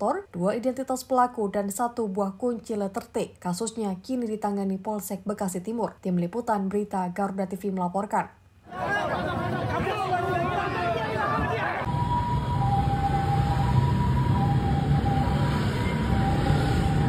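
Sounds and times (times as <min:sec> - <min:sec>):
crowd shouting and talking: 0:08.7 - 0:11.9
low rumble of street traffic: 0:08.7 - 0:17.0
faint two-tone siren: 0:10.4 - 0:17.0.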